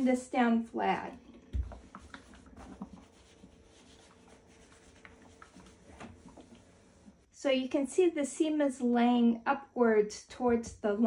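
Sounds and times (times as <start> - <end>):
iron rubbing over fabric: 1.6 - 7.3.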